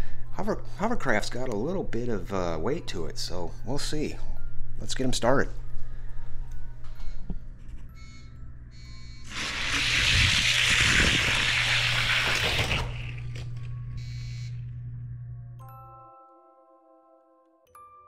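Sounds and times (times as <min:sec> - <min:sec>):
steady low hum: 0:12.2 - 0:15.7.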